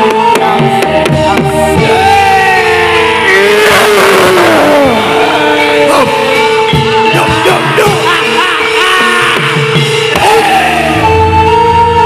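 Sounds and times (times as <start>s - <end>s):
gamelan music: 0.0s - 12.0s
falling vocal glide: 1.8s - 11.1s.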